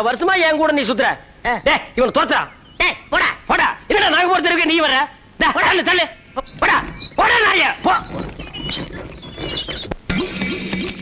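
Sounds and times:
short high yelping cries: 6.4 - 11.0.

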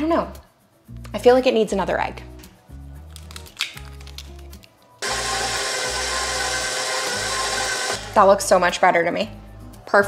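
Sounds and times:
low background music: 0.0 - 10.0
stand mixer motor running: 5.0 - 8.2.

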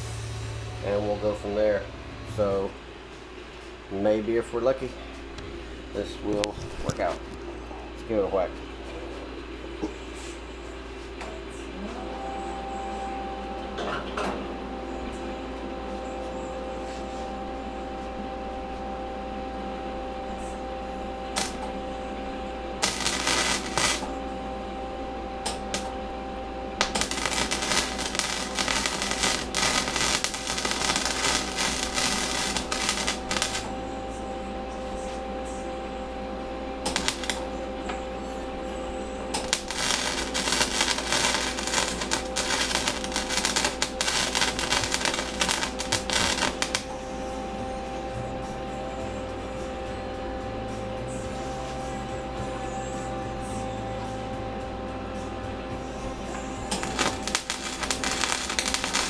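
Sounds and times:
steady hum: 0.0 - 59.0
welder arc crackling: 21.2 - 21.7, 22.7 - 24.2, 25.4 - 26.0, 26.7 - 34.4, 36.8 - 37.7, 39.2 - 47.1, 56.6 - 59.0.

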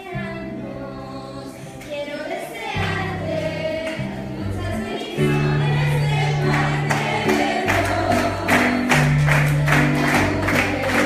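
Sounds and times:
voices singing worship music: 0.0 - 11.0.

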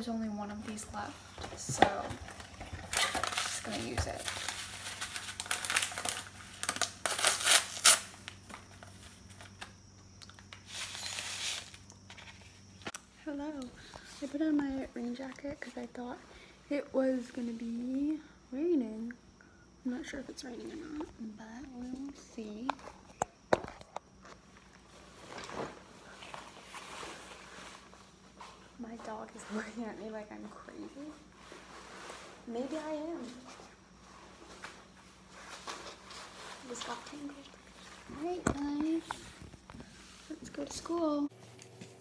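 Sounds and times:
paper packet crinkling: 2.2 - 9.7.

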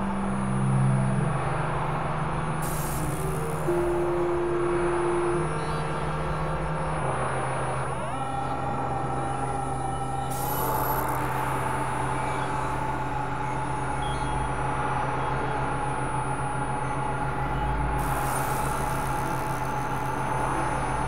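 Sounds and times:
electronic drone: 0.0 - 21.0.

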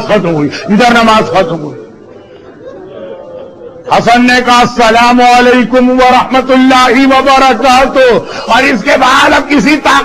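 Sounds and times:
man preaching: 0.0 - 1.9, 3.9 - 10.0.

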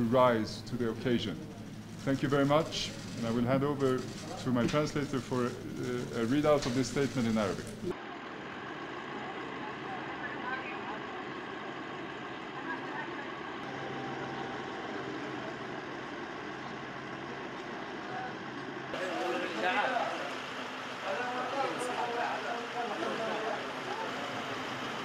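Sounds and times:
distant voices: 0.0 - 25.0.

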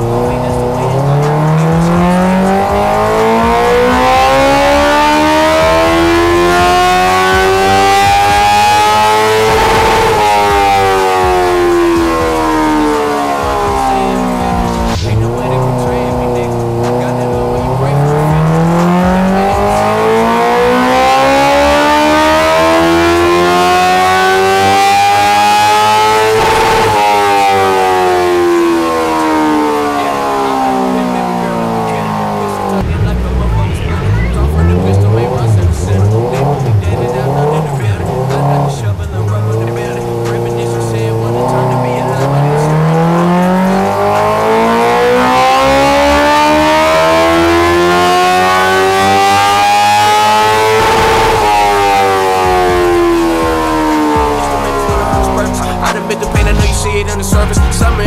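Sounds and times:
motorcycle engine revving on dyno: 0.0 - 58.0.

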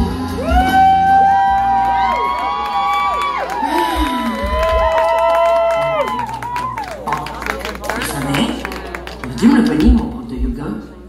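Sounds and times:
audience whooping: 0.2 - 8.8.

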